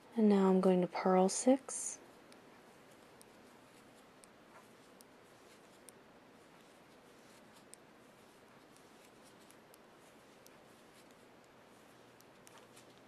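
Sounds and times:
knitting needles clicking: 0:02.2 - 0:13.0.

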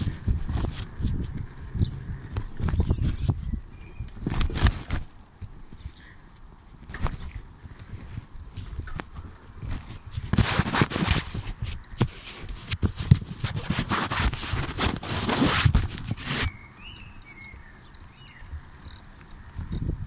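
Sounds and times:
microphone handling rustle: 0:00.0 - 0:17.6.

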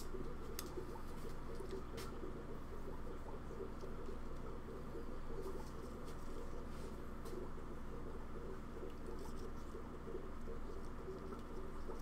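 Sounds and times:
low fluttering hum: 0:00.0 - 0:12.0.

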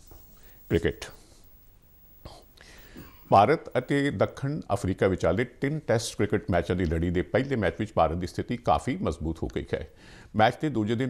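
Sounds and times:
faint breath: 0:00.3 - 0:01.6, 0:02.2 - 0:03.3, 0:09.9 - 0:10.4.

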